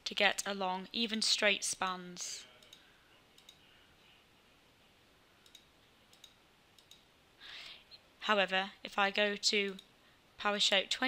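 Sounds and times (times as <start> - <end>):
faint computer mouse clicks: 3.4 - 3.6, 5.4 - 7.1.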